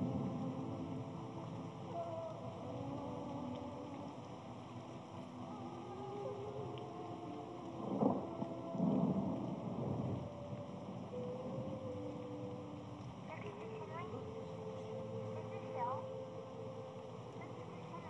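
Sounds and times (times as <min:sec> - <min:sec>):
sustained low film score chords: 0:00.0 - 0:18.0.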